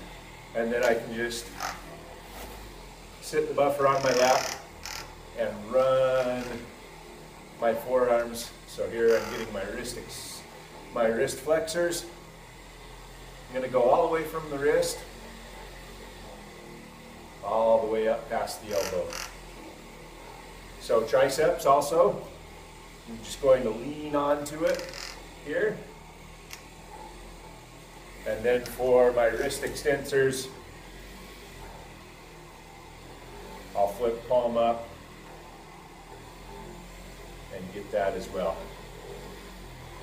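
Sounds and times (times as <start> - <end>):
car buffer humming: 0.0 - 40.0.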